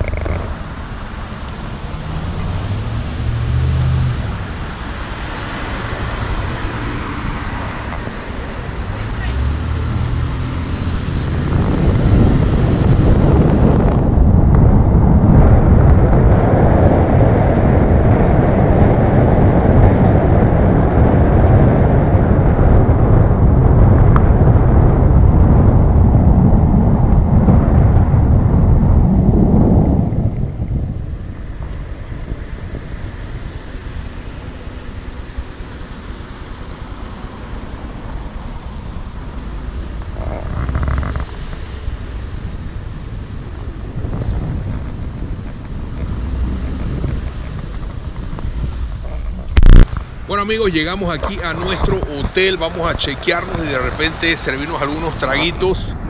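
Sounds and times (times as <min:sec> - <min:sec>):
road and wind noise from moving car: 0:00.0 - 0:56.0.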